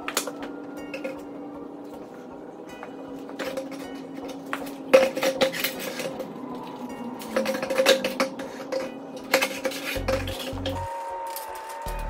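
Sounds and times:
hard objects clinking and knocking: 2.7 - 11.9.

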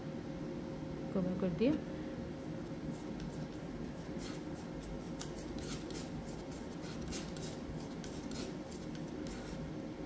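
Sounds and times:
faint steady hum: 0.0 - 10.0
metal knife scraping paste: 2.9 - 9.6.

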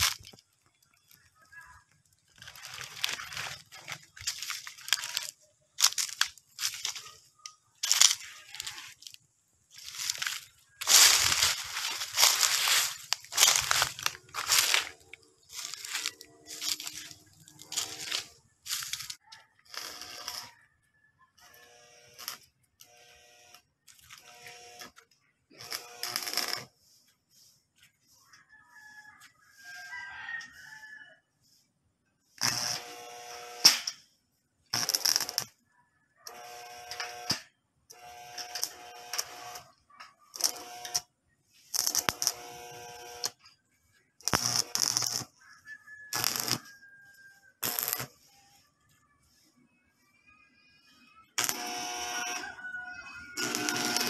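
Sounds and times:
arc welding crackling and hissing: 0.0 - 20.5, 22.1 - 25.0, 25.6 - 26.7, 32.4 - 33.9, 34.7 - 35.6, 36.3 - 37.4, 38.0 - 39.7, 40.3 - 43.4, 44.2 - 45.4, 46.1 - 46.7, 47.6 - 48.2, 51.3 - 52.5, 53.2 - 54.0.

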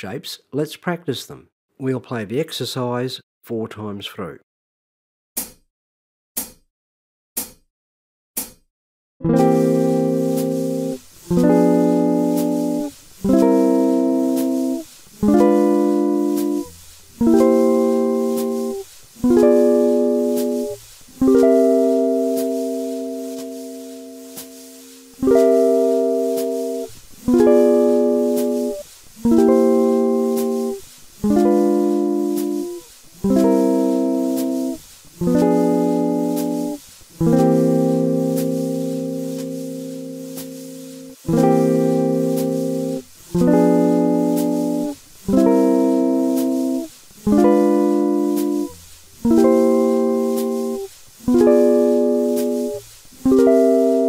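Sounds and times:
guitar chords ringing: 9.2 - 54.0.

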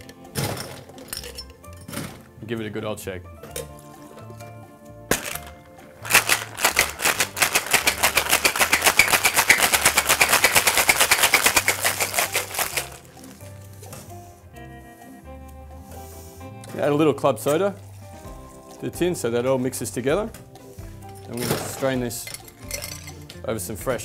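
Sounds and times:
shaker tins knocking together: 5.1 - 13.4
ice rattling in cocktail shaker: 5.1 - 13.5, 21.3 - 23.3.

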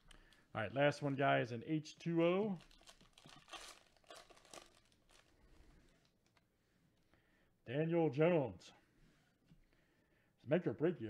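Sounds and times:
card pack wrapper tearing: 2.6 - 5.3.

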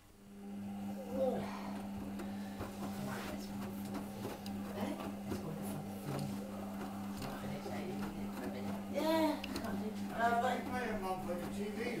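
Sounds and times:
washing machine motor hum: 0.0 - 12.0.

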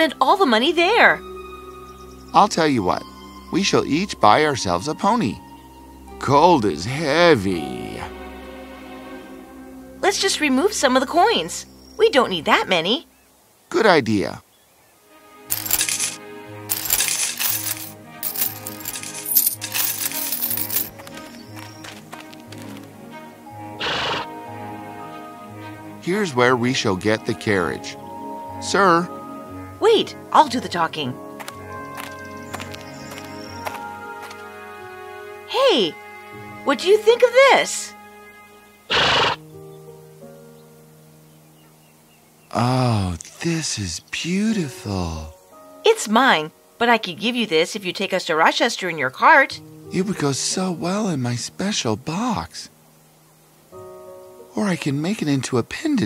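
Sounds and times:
soft background music: 0.0 - 56.0
coins jingling and clinking: 15.5 - 21.3
horse snort: 23.8 - 24.3, 38.9 - 39.4.

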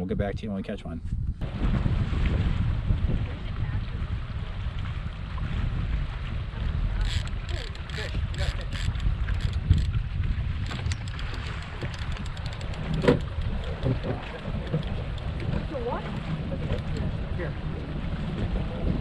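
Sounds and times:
wind on microphone: 0.0 - 19.0
boat motor rumbling: 1.3 - 19.0
sharp clicks: 7.0 - 10.0, 10.6 - 15.3.

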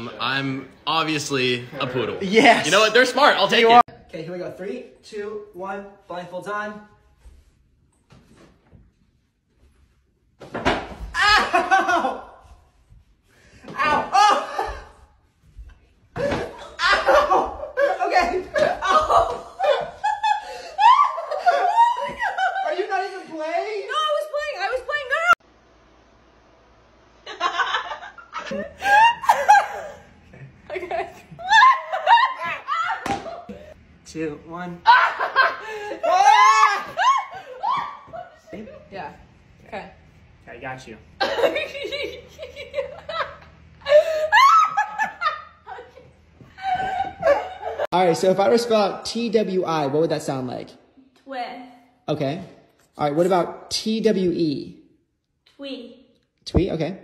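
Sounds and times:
people laughing loudly: 11.2 - 12.4, 16.2 - 23.2, 27.3 - 30.1, 31.4 - 33.6, 34.9 - 38.7, 41.2 - 47.9.

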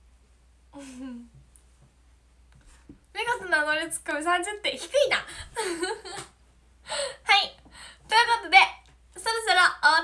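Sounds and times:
young woman giggling: 0.8 - 1.4, 5.4 - 6.3.

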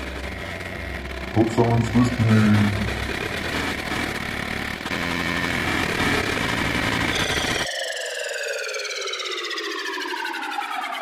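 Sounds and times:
crackling static: 0.0 - 7.6.

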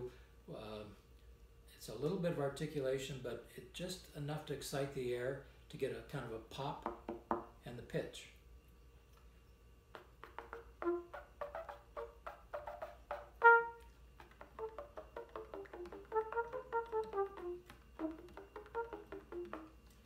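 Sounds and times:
soft short trumpet notes: 10.8 - 13.9.

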